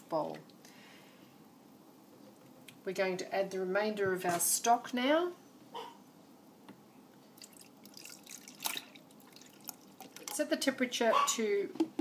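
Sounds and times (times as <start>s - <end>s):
liquid pouring and splashing: 7.4s - 10.5s.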